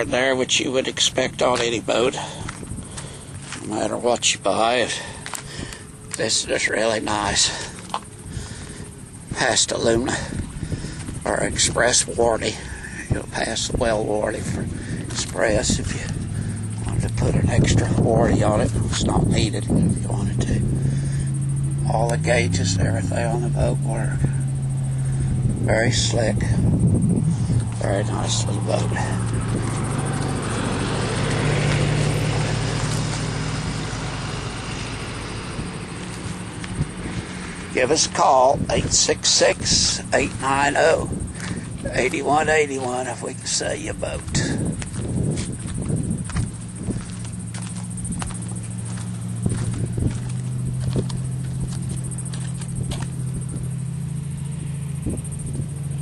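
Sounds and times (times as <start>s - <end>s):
engine-like hum: 0.0s - 56.0s
noisy wash: 0.0s - 56.0s.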